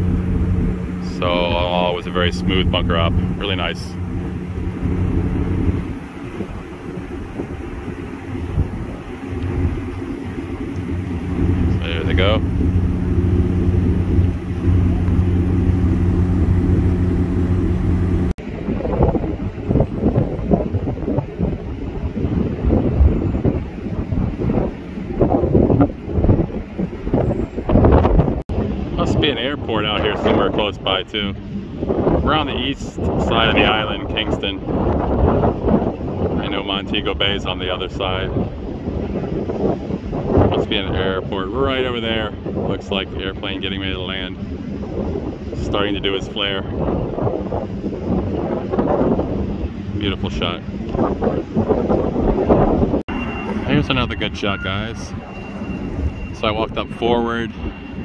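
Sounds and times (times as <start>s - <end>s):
ship diesel machinery drone: 0.0s - 20.2s, 47.5s - 58.0s
wind buffeting microphone: 0.0s - 58.0s.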